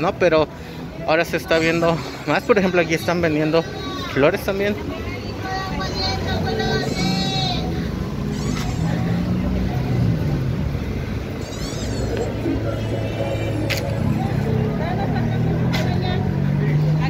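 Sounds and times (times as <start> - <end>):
car engines passing: 0.0 - 17.0
voices of passers-by: 0.0 - 17.0.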